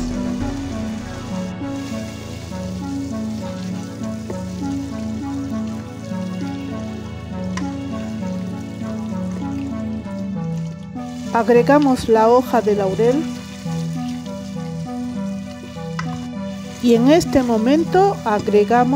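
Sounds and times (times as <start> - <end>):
background music with low melody: 0.0 - 18.9
sauce sizzling in a pan: 0.0 - 18.9
carrots stirred in pan: 1.8 - 6.7, 11.0 - 18.9.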